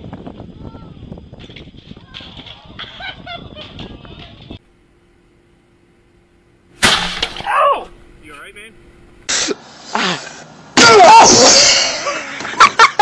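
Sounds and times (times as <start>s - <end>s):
people shouting and yelling: 7.4s - 8.0s, 10.8s - 12.4s.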